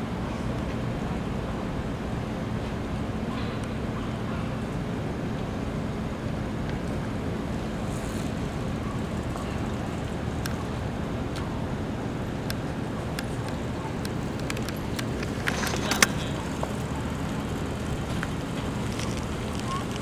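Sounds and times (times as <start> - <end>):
street rumble: 0.0 - 20.0.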